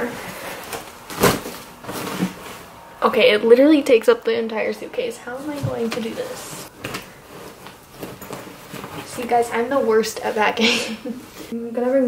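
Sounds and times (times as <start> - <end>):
fabric rustling: 5.4 - 11.6.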